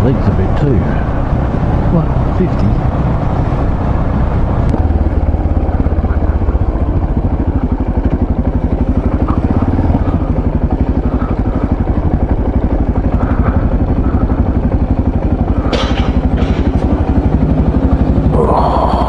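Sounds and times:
motorcycle engine at low revs: 0.0s - 19.0s
short clattering knocks: 15.6s - 16.8s.

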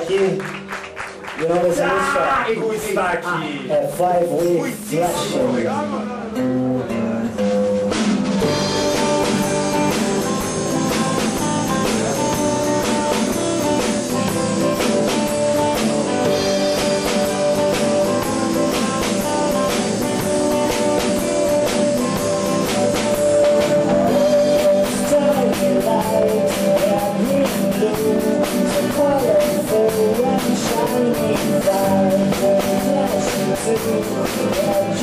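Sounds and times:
acoustic guitars: 0.0s - 35.0s
drum kit: 0.0s - 35.0s.

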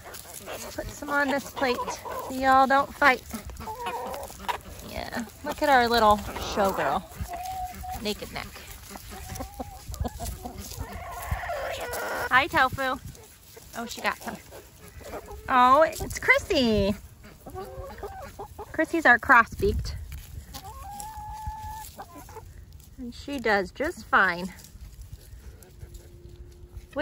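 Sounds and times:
chickens clucking: 0.0s - 27.0s.

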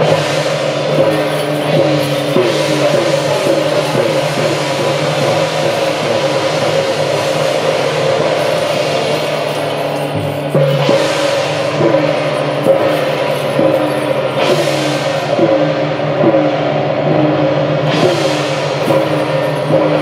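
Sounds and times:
drums gongs and cymbals beating: 0.0s - 20.0s
gong strokes falling in pitch: 0.0s - 20.0s
held tone: 6.0s - 16.8s.

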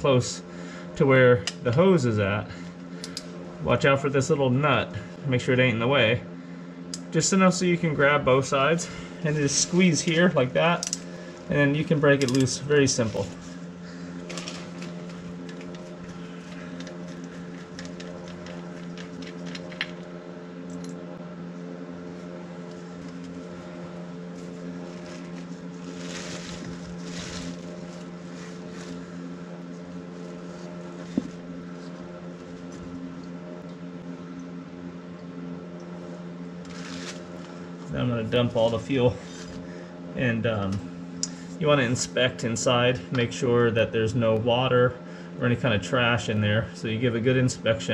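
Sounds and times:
low hum with pitched tones: 0.0s - 47.9s
plastic bag rustling: 12.9s - 20.0s, 24.2s - 31.4s, 36.7s - 37.6s.

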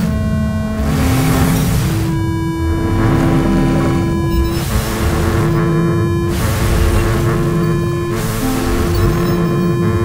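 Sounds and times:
swells of noise: 0.6s - 4.8s
held synthesized tones: 0.6s - 10.0s.

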